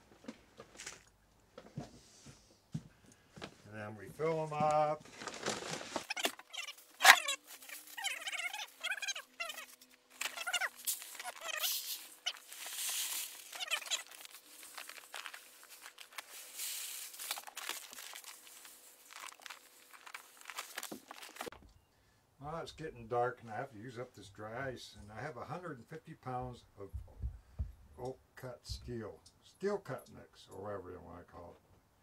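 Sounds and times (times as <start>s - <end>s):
rice pouring into buckets: 10.8s - 21.4s.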